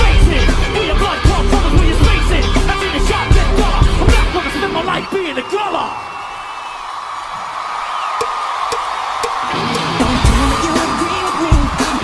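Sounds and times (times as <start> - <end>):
concert crowd cheering: 0.0 - 12.0.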